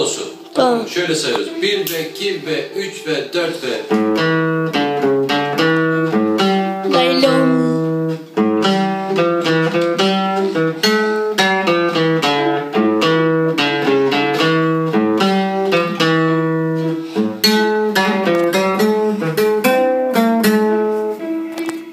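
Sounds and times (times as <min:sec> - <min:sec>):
classical guitar solo: 0:00.0 - 0:21.9.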